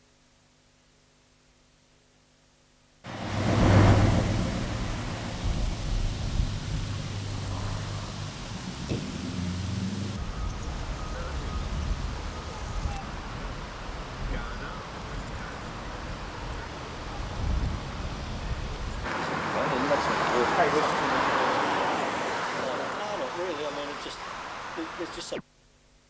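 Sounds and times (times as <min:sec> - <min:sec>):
vehicle engine running: 0:03.1 - 0:11.5.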